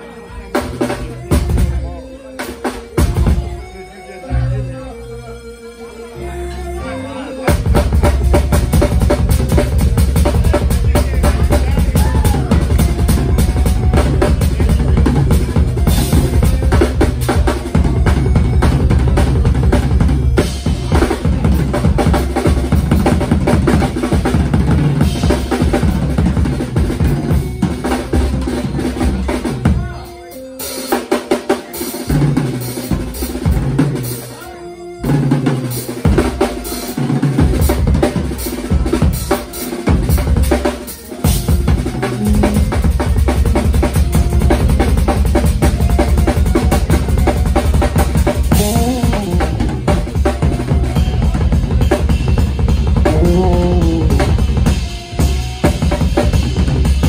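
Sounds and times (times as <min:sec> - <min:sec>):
drum kit playing with band: 0:00.0 - 0:05.1, 0:06.1 - 0:57.0.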